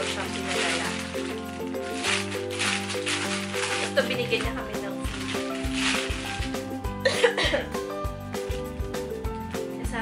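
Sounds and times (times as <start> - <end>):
background music with steady beat: 0.0 - 10.0
woman coughing: 7.0 - 7.8.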